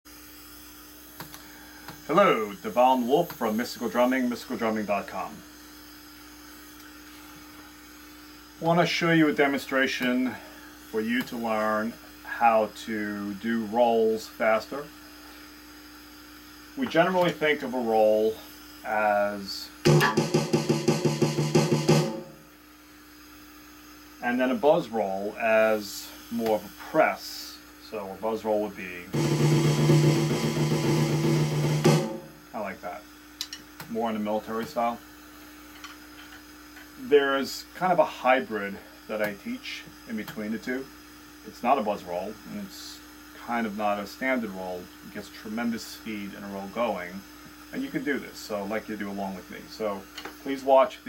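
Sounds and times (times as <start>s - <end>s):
low electrical hum: 0.1s - 51.0s
drum roll on electronic drums: 19.9s - 22.4s, 29.1s - 32.5s.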